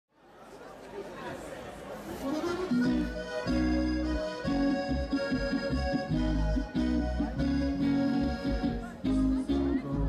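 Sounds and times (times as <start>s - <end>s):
crowd of people chatting: 0.1s - 10.0s.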